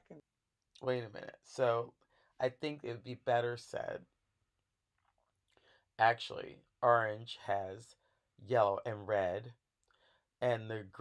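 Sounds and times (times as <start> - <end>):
person speaking: 0.8 - 4.0, 6.0 - 9.5, 10.4 - 11.0.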